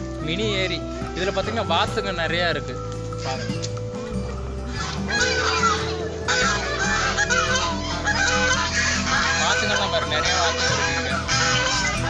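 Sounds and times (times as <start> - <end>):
geese honking: 0.7 - 12.0.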